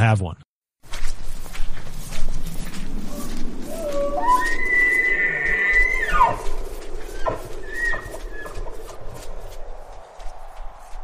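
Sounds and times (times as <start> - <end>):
elk bugling: 3.1 - 9.0.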